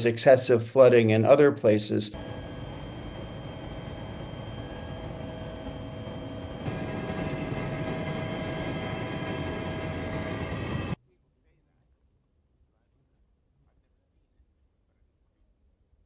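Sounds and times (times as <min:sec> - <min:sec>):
aircraft cabin engine drone: 0:02.1 - 0:11.0.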